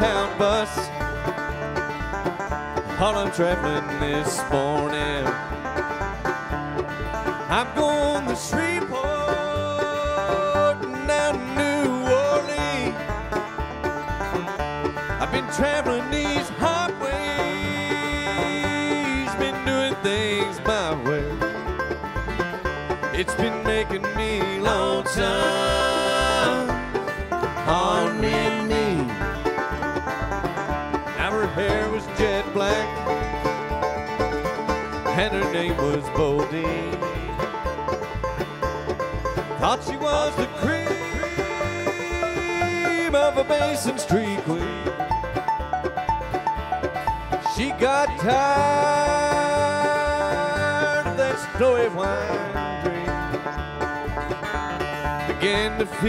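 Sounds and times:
bluegrass band playing: 0.0s - 56.0s.

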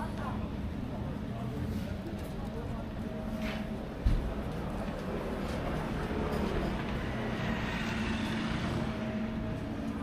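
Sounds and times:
low engine hum: 0.0s - 10.0s
road traffic rumble: 0.0s - 10.0s.

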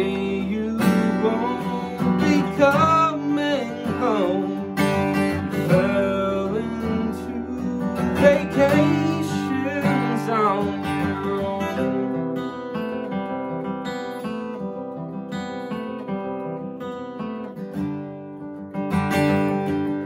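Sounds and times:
man singing: 0.0s - 12.3s
acoustic guitar picking and strumming: 0.0s - 20.0s.

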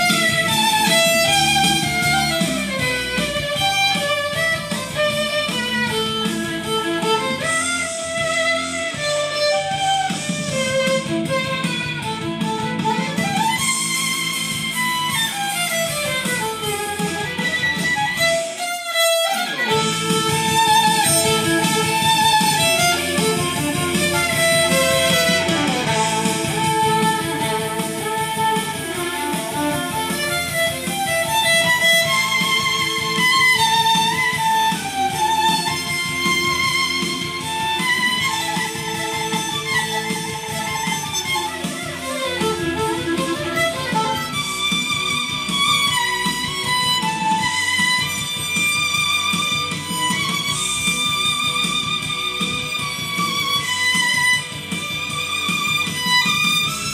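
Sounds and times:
violin melody: 0.0s - 56.9s.

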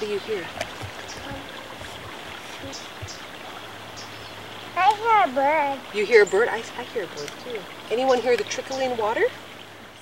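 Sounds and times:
creek trickling over rocks: 0.0s - 10.0s
child's voice: 4.8s - 5.9s.

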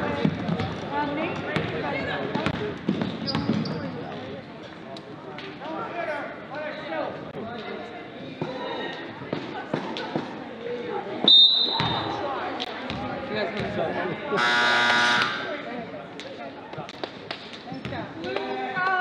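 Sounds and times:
crowd chatter: 0.0s - 19.0s
basketball bouncing: 2.3s - 3.7s, 12.8s - 13.7s
referee's whistle: 11.2s - 12.1s
scoreboard horn: 14.4s - 15.5s.

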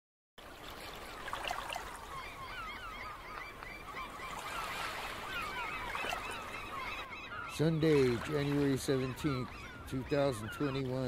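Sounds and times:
flock of birds calling: 1.8s - 11.0s.

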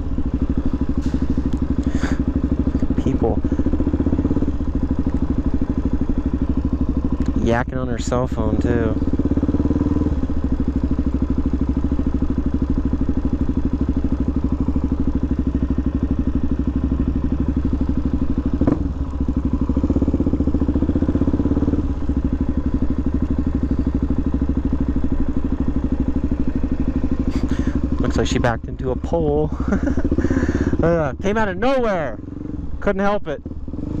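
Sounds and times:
motorcycle engine running: 0.0s - 34.0s.

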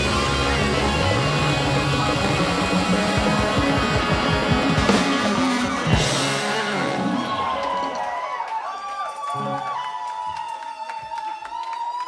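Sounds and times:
bass note sliding upward: 0.0s - 7.5s
funk band playing: 0.0s - 8.0s.

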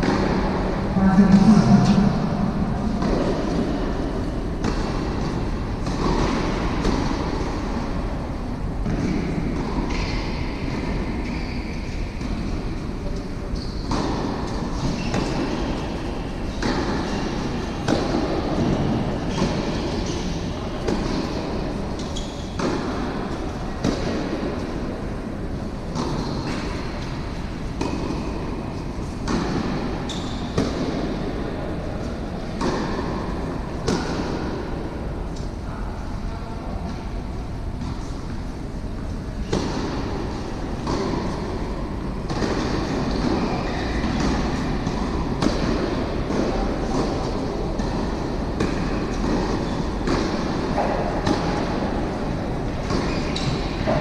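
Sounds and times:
rumbling hall room noise: 0.0s - 54.0s.

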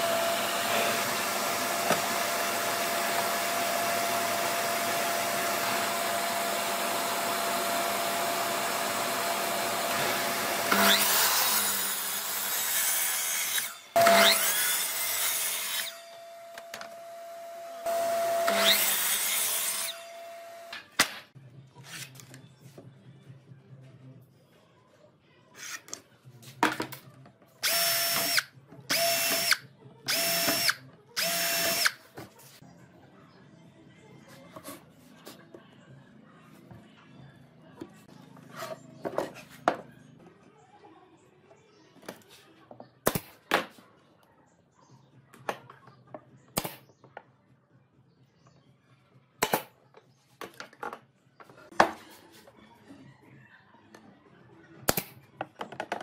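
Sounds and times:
miter saw cutting wood: 0.0s - 20.7s.

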